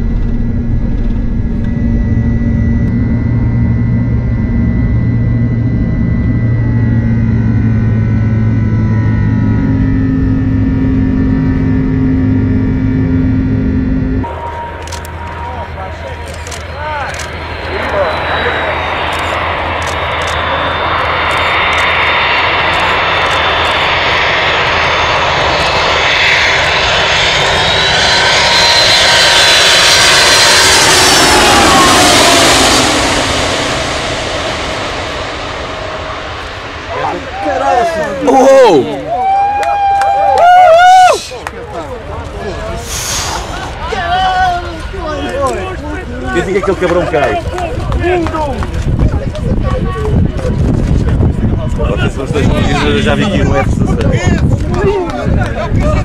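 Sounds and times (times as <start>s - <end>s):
jet airliner passing overhead: 0.0s - 56.0s
jet engine drone in cabin: 0.0s - 56.0s.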